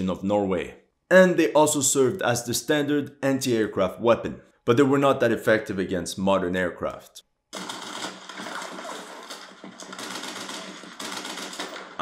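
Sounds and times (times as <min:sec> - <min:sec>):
rapid gunfire: 0:07.6 - 0:12.0.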